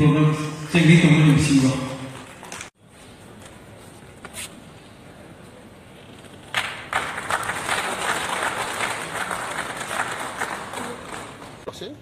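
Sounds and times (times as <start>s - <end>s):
audience applauding: 6.5s - 11.6s.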